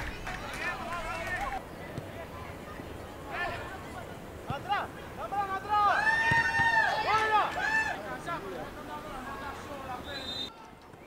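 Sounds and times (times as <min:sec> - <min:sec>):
players shouting: 0:03.2 - 0:10.8.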